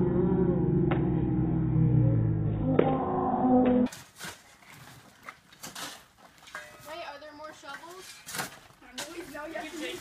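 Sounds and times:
shovels scraping dry dirt: 3.9s - 10.0s.

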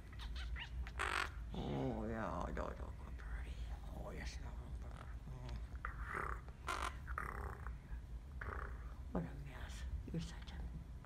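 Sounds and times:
parrot scratchy calls: 0.0s - 1.6s, 5.8s - 9.0s.

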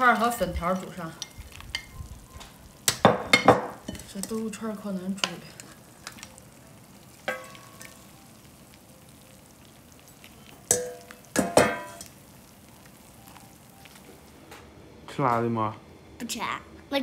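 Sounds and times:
broth simmering with low hiss: 0.0s - 17.0s
metal bowl clanking against pot: 2.8s - 4.5s, 7.2s - 8.0s, 10.7s - 12.1s.

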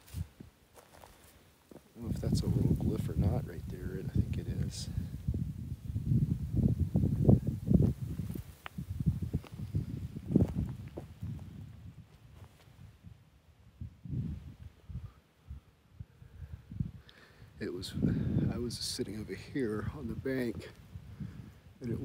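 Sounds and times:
footsteps crunching on rocks: 0.0s - 1.9s, 7.8s - 11.5s.

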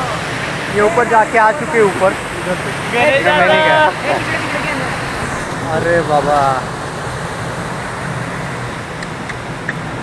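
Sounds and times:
water rushing down spillway: 0.0s - 10.0s.

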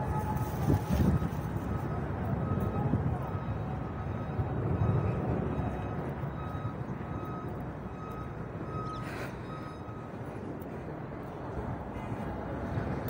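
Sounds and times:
reversing alarm beeping: 0.0s - 11.6s
road traffic rumble: 0.0s - 13.0s.

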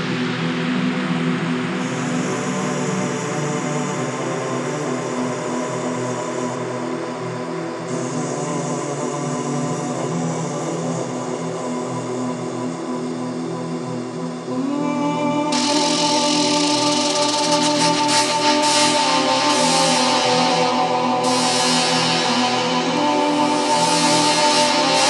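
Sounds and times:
synthesizer drone chords: 13.3s - 25.0s
hissing noise wash: 15.5s - 25.0s.

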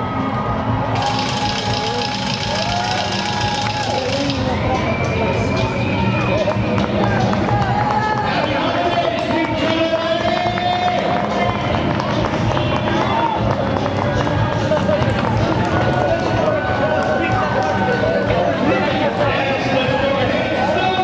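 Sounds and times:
crowd voices: 0.0s - 21.0s
runners footfalls on asphalt: 0.3s - 21.0s.

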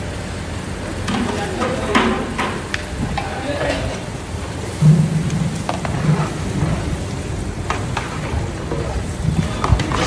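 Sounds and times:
bubbling gravy sizzling: 0.0s - 10.0s.

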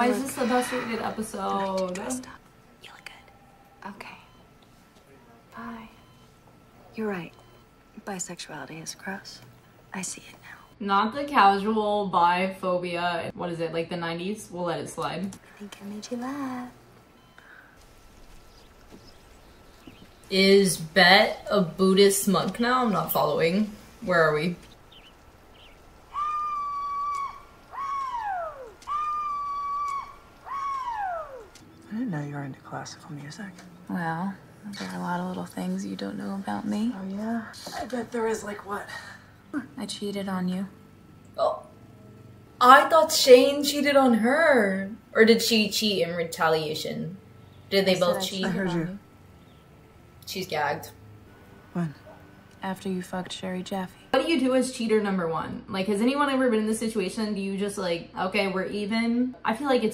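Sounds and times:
television dialogue: 0.0s - 25.8s, 27.2s - 59.9s
woman calling whoo-hoo: 26.1s - 31.6s.

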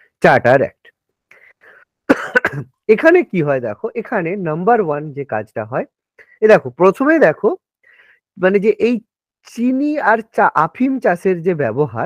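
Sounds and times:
faint breathing: 1.3s - 2.0s, 6.2s - 6.4s, 7.8s - 8.4s
man coughing: 2.1s - 2.8s.

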